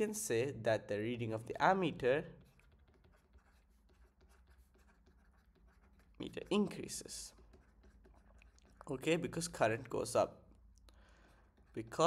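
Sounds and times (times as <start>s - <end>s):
stylus scratching on tablet: 1.4s - 12.0s.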